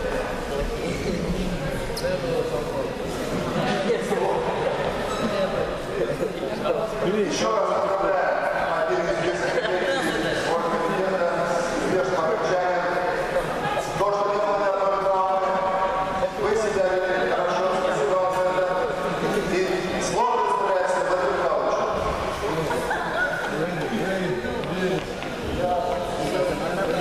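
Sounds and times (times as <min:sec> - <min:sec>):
men talking indistinctly: 0:00.0 - 0:27.0.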